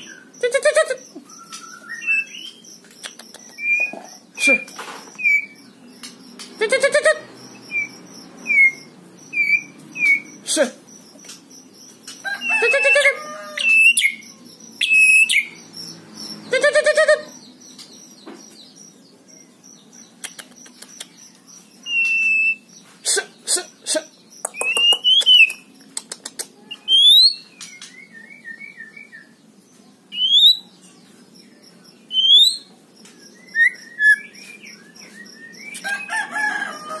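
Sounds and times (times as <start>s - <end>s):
bird whistling sharp notes: 1.2s - 2.6s
bird chattering and clicks: 2.5s - 5.3s, 20.0s - 22.2s, 23.4s - 26.8s
chicken calling: 6.6s - 7.9s, 12.2s - 14.2s, 16.5s - 17.4s, 35.8s - 37.0s.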